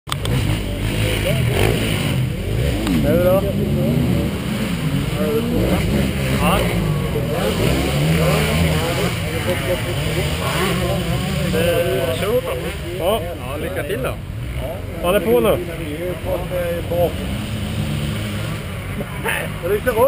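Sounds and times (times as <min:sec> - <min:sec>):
motorcycle engines revving: 0:00.1 - 0:20.0.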